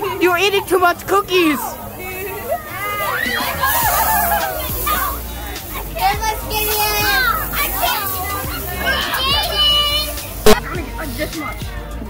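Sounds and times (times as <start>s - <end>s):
children shouting: 1.4s - 10.8s.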